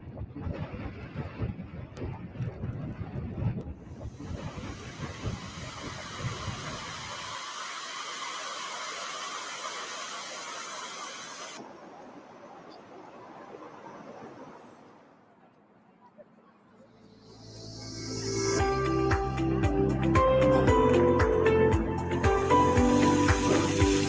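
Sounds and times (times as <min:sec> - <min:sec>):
jet engine rumble: 0:00.0 - 0:15.8, 0:16.4 - 0:19.6
jet engine hiss: 0:04.0 - 0:11.6, 0:17.0 - 0:20.1, 0:22.2 - 0:24.0.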